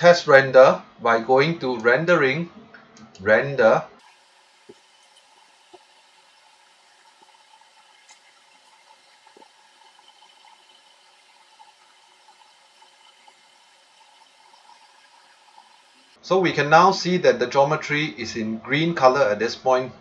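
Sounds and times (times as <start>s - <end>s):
faint steady hiss: 3.8s - 19.9s.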